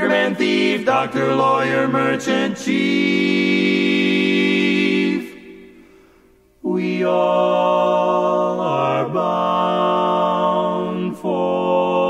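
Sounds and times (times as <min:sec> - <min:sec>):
men singing a cappella: 0:00.0 - 0:05.6, 0:06.6 - 0:12.0.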